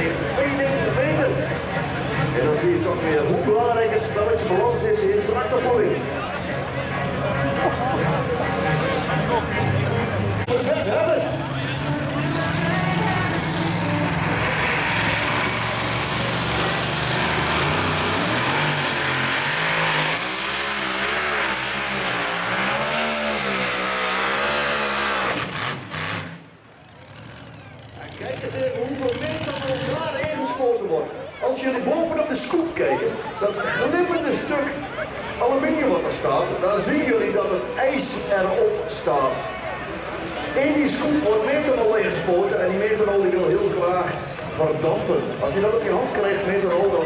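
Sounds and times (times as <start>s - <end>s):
hot rod engine revving hard: 7.5s - 30.1s.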